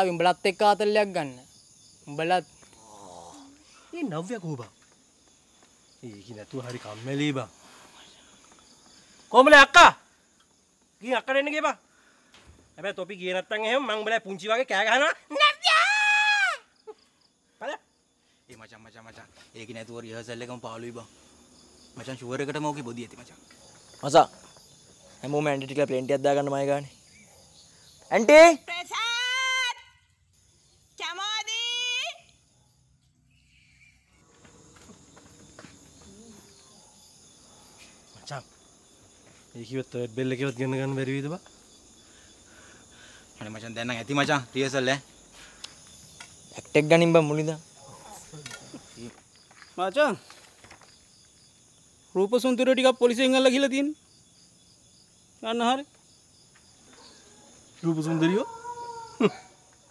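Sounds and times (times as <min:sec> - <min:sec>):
crickets chirring: 0:00.0 - 0:59.9.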